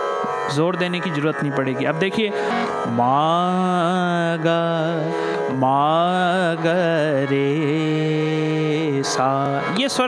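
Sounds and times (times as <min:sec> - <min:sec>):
man singing classical vocals: 0:00.5 - 0:10.0.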